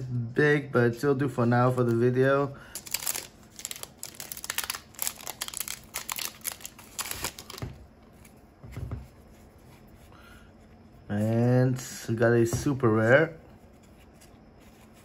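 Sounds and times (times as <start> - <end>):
foil wrapper crinkling and tearing: 2.7 - 7.8
soft thumps: 8.6 - 9.3.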